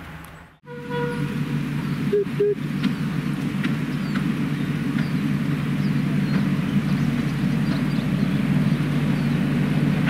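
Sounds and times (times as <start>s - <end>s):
diesel locomotive engine running: 0.0s - 10.0s
small railway engine running: 0.0s - 10.0s
train horn toot: 0.6s - 1.5s, 2.1s - 2.6s.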